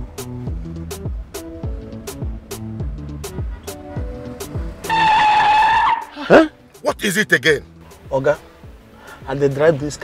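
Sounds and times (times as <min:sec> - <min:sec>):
music with deep drum beat: 0:00.0 - 0:05.0, 0:06.3 - 0:10.0
car tyre screech: 0:04.8 - 0:06.5.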